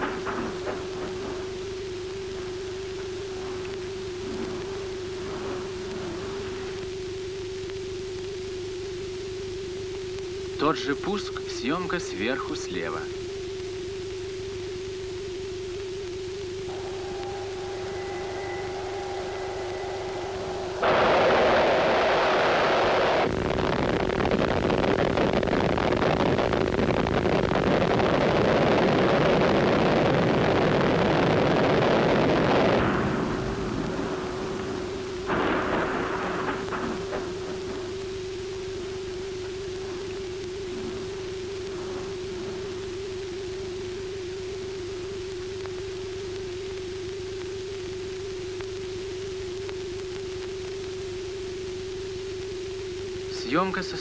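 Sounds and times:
rocket engine roar: 0.0s - 7.8s, 16.7s - 43.8s
steady electronic drone: 0.0s - 9.0s, 16.2s - 44.7s.

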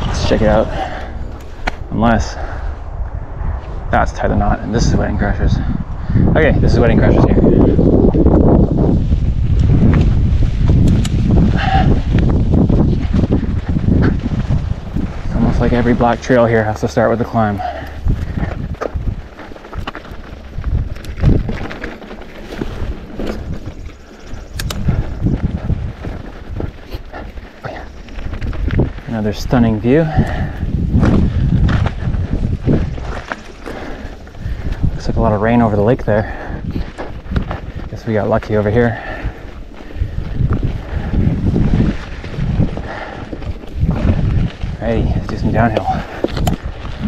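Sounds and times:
bike rattling: 0.0s - 47.0s
bike tyres rumbling over dirt: 0.0s - 47.0s
wind buffeting microphone: 0.0s - 47.0s.

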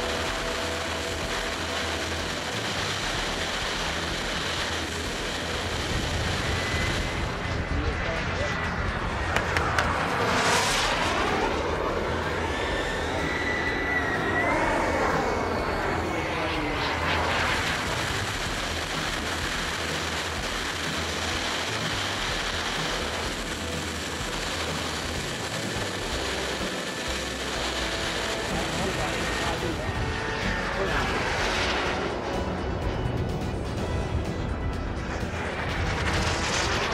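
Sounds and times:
model jet turbine whine: 0.0s - 36.9s.

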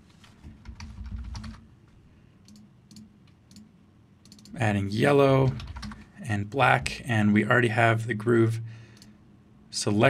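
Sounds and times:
keyboard typing: 0.5s - 1.6s, 2.4s - 4.6s, 5.4s - 6.1s.

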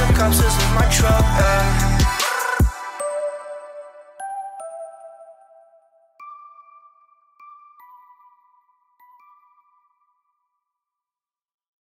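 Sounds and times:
synth melody: 0.0s - 10.6s.

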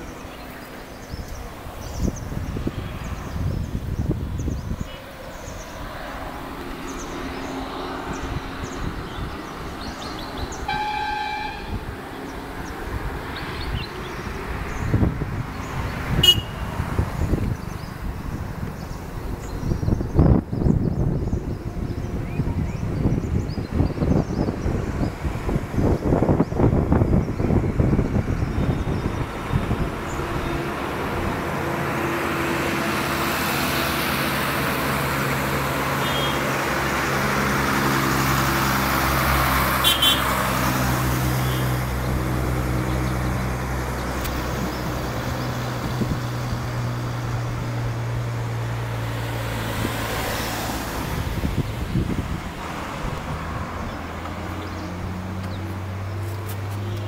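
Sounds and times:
wind buffeting microphone: 0.0s - 10.8s, 11.5s - 36.0s, 36.6s - 57.0s
tyre and road noise: 0.0s - 57.0s
truck diesel engine passing: 5.0s - 19.5s, 26.8s - 57.0s.

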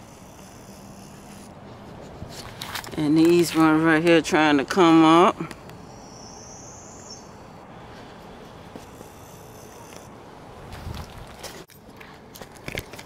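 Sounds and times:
outdoor background hiss: 0.0s - 13.0s
footsteps in garden: 1.6s - 4.2s, 10.6s - 13.0s.

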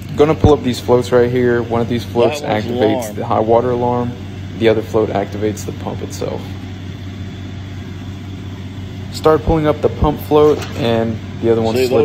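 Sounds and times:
vacuum pump truck humming: 0.0s - 12.0s.

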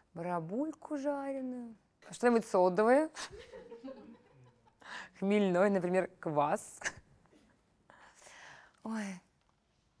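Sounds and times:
soft breathy whisper: 7.9s - 8.9s.

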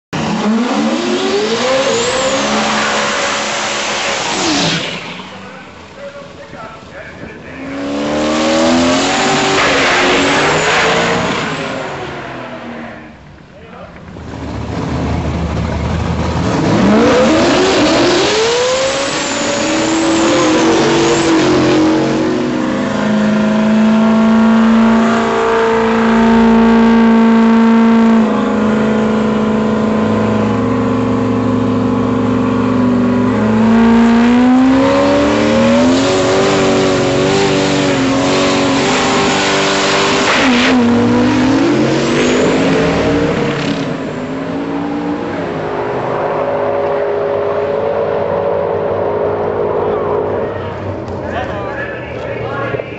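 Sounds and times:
truck engine revving: 0.1s - 13.4s, 14.0s - 52.9s.

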